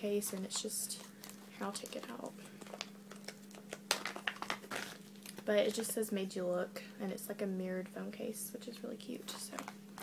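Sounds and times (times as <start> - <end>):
plastic packaging crinkling: 0.0 - 6.0
faint steady hum: 0.0 - 10.0.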